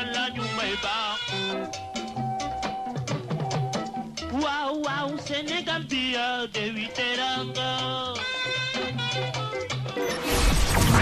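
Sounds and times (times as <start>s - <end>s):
person singing: 0.0s - 1.4s, 4.3s - 8.8s
band music: 0.0s - 10.3s
percussion: 0.0s - 11.0s.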